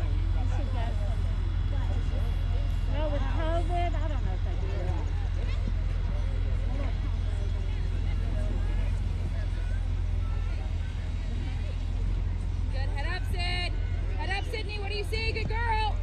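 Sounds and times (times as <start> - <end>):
distant voices of players: 0.0 - 16.0
steady low rumble: 0.0 - 16.0.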